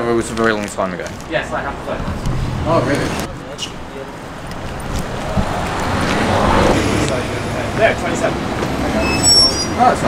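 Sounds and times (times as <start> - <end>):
road traffic: 0.0 - 10.0.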